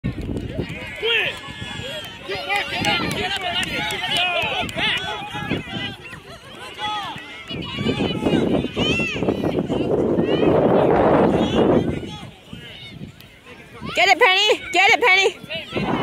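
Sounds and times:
crowd calling and shouting: 0.0 - 16.0.

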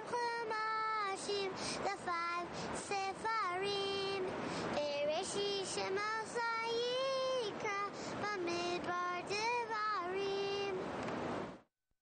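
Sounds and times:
high voice singing slow melody: 0.0 - 10.9.

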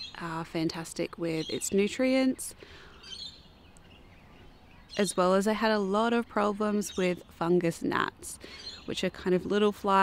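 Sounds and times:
faint bird chirp: 1.3 - 5.4, 8.4 - 9.0.

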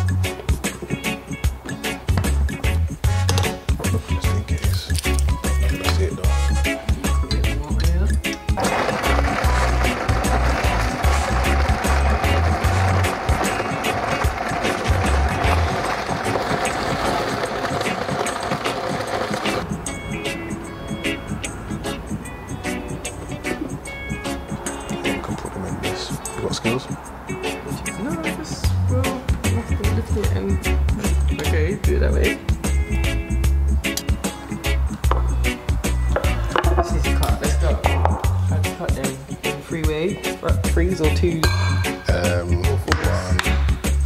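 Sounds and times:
background music with steady beat: 0.0 - 44.0
blender running: 8.6 - 19.6.

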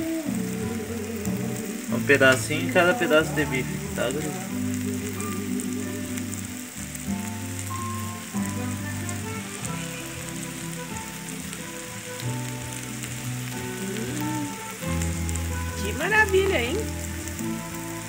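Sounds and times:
background music: 0.0 - 18.0
steaks and onions sizzling: 0.0 - 18.0.

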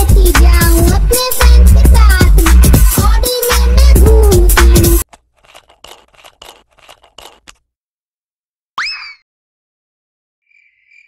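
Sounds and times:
screw cap creaking on metal threads: 5.0 - 7.6.

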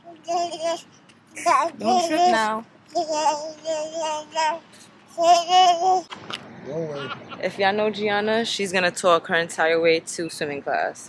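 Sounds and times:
high voice singing: 1.4 - 6.1.

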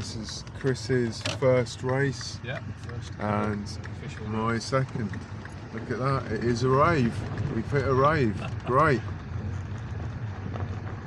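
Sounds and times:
car engine hum: 0.0 - 11.0
tyre rumble on unpaved ground: 0.0 - 11.0.

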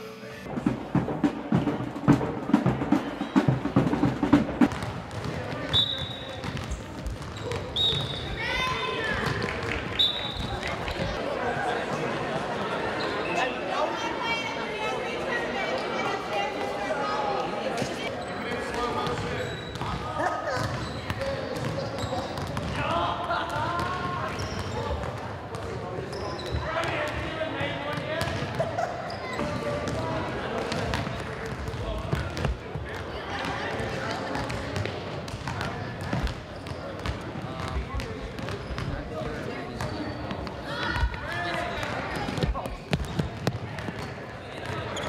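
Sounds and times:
echoing voices and chatter: 0.0 - 45.0.

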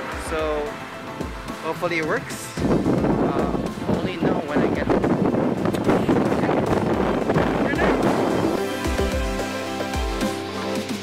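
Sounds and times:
background music sustained notes: 0.0 - 11.0
wind buffeting microphone: 0.1 - 9.6.

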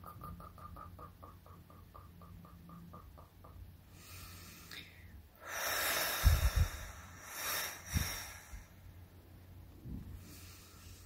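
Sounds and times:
person blowing out breath: 3.9 - 8.9.

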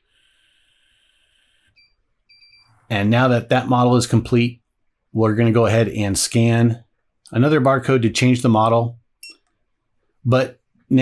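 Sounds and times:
faint beep: 0.2 - 2.8, 9.2 - 9.5.

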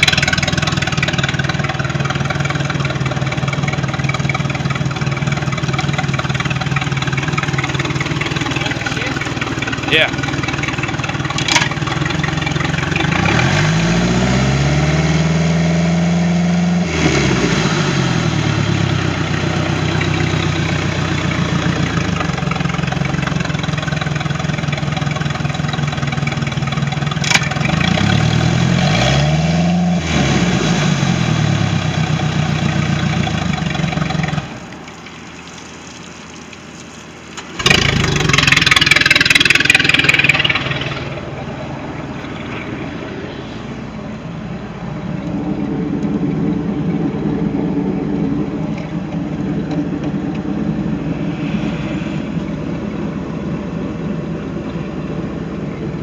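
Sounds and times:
boat engine revving: 0.0 - 35.1, 37.4 - 56.0
loud rushing noise: 50.5 - 54.0.

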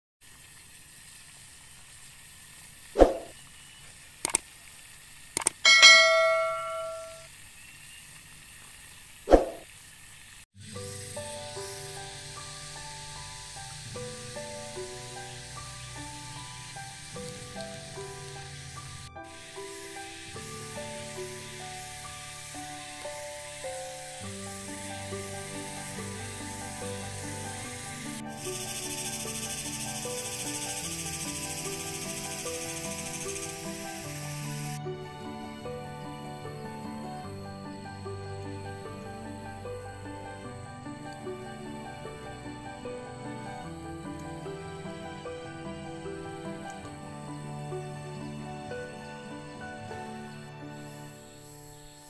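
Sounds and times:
steady hiss: 0.2 - 52.0
clicks: 4.2 - 4.4, 5.4 - 5.6
bell-like chime: 5.6 - 7.3
gentle instrumental music: 5.7 - 7.3, 10.6 - 52.0.

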